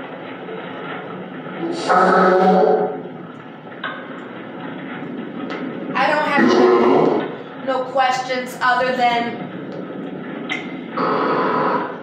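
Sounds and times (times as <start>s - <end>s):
radio static hiss: 11.0s - 12.0s.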